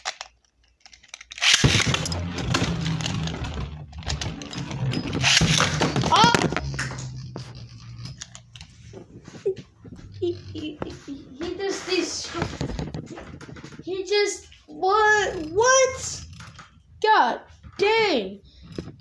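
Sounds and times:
spinning tops clattering: 0:01.4 - 0:08.8
low hum of spinning tops: 0:01.4 - 0:19.0.

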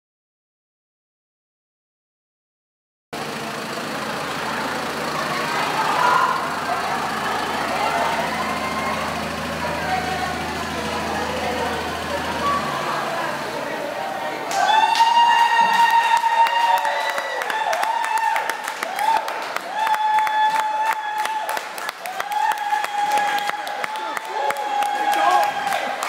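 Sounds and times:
crowd chatter: 0:03.2 - 0:20.0, 0:21.5 - 0:26.0
truck engine idling: 0:03.2 - 0:26.0.

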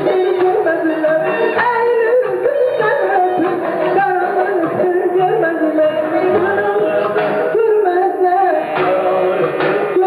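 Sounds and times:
woman singing: 0:00.0 - 0:09.0
band playing: 0:00.0 - 0:10.0.

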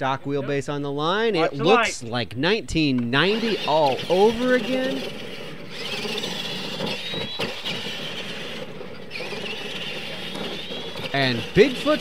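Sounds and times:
electric motor whine: 0:03.2 - 0:12.0
rough running noise: 0:03.3 - 0:12.0.

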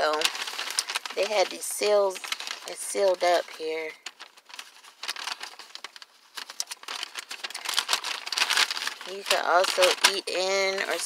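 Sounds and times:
paper bag rustling and crinkling: 0:00.0 - 0:11.0.

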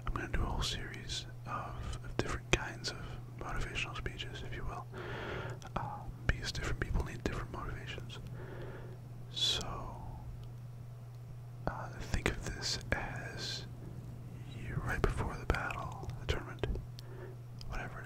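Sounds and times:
man whispering: 0:00.0 - 0:04.9, 0:05.6 - 0:08.3, 0:09.3 - 0:10.3, 0:11.6 - 0:13.7, 0:14.4 - 0:16.8, 0:17.6 - 0:18.0
steady low hum: 0:00.0 - 0:18.0
small mouth clicks: 0:15.5 - 0:17.8.

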